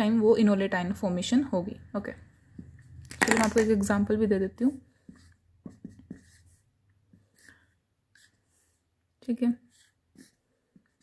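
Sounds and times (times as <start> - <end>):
marker scratching on paper: 4.7 - 11.0.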